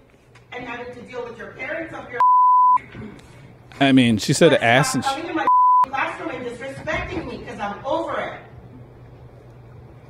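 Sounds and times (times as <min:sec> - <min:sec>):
censor beep: 0:02.2 - 0:02.8, 0:05.4 - 0:05.9
woman speaking: 0:04.6 - 0:08.5.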